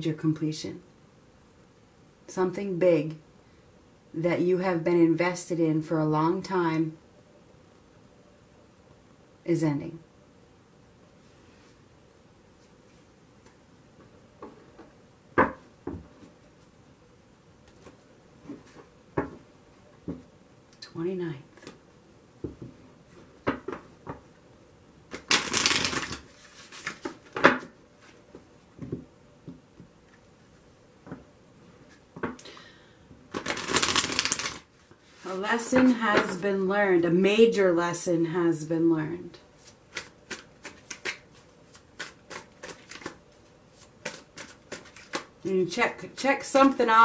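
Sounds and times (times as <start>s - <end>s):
cards tapping: 25.1s - 26.2s, 33.3s - 34.6s, 39.9s - 43.2s, 44.0s - 45.3s
cards shuffling: 25.1s - 28.2s, 33.3s - 34.7s, 39.6s - 45.4s.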